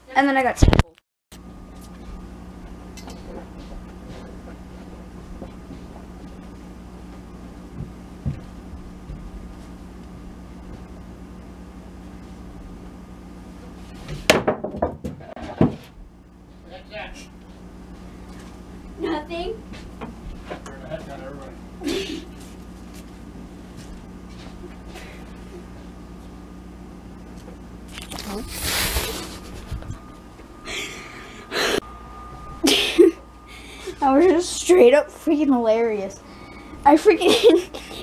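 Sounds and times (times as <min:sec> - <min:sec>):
clatter of knocks and thuds: 0:14.0 - 0:16.0
held-back laughter: 0:37.2 - 0:38.0.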